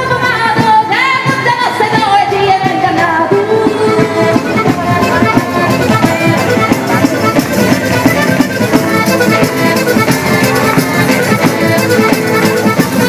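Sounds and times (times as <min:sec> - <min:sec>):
strummed guitars: 0:00.0 - 0:13.0
frame drum beat: 0:03.7 - 0:13.0.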